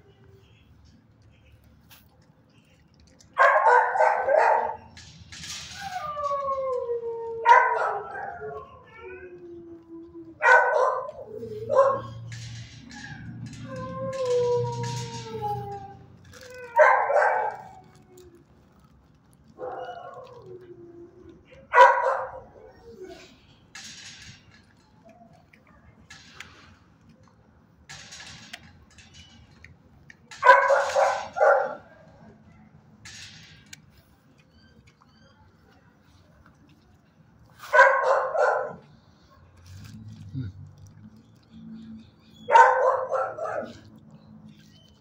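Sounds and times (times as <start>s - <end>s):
dog barking and howling: 3.4s - 4.9s, 5.8s - 18.2s, 19.6s - 23.3s, 30.4s - 32.3s, 37.7s - 38.9s, 42.5s - 44.0s.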